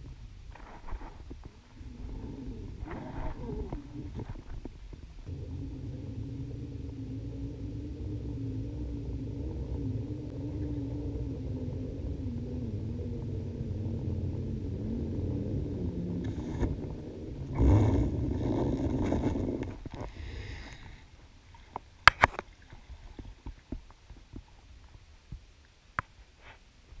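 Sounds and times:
low underwater rumble: 0:00.0 - 0:25.5
faint wavering drone: 0:00.8 - 0:21.7.

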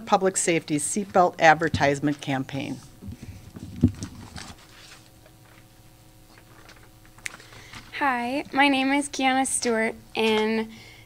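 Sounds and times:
paper rustling: 0:02.1 - 0:05.7, 0:06.3 - 0:08.0.

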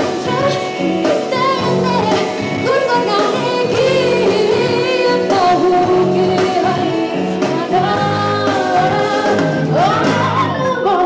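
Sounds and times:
live rock band: 0:00.0 - 0:11.0.

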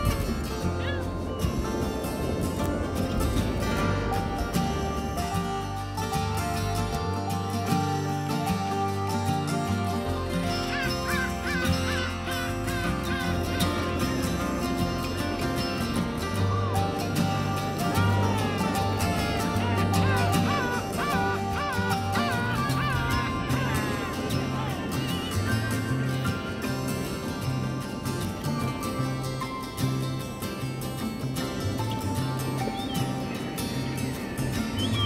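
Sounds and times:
warbling high melody: 0:00.0 - 0:29.4
folk instrumental low notes: 0:00.0 - 0:35.0.

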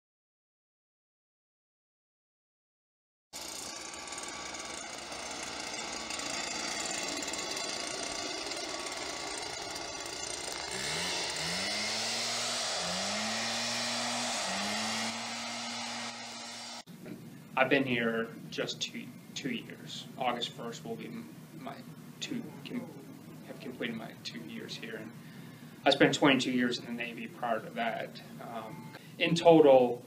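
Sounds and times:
motor revving up: 0:03.4 - 0:16.9
humming machine noise: 0:03.4 - 0:29.1.

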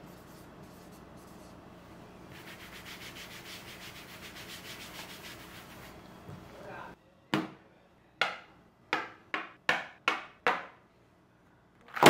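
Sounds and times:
hand rubbing tabletop: 0:02.3 - 0:06.0.

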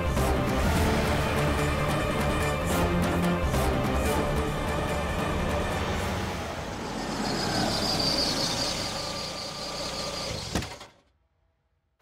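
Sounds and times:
car rolling to a stop: 0:05.8 - 0:11.1
high squeal: 0:06.6 - 0:10.9.

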